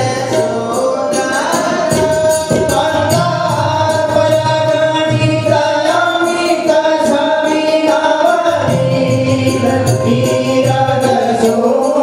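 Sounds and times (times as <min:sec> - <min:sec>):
group singing: 0:00.0 - 0:12.0
rhythmic percussion: 0:00.0 - 0:12.0.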